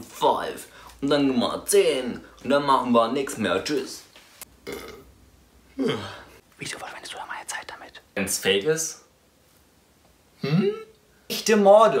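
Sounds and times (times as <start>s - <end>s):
man burping: 4.6s - 5.1s, 5.7s - 6.3s, 10.4s - 11.0s.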